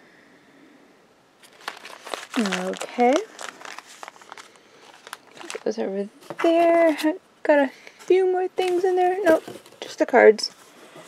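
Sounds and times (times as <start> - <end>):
plastic sachet crinkling: 1.4 - 7.0, 8.6 - 9.9.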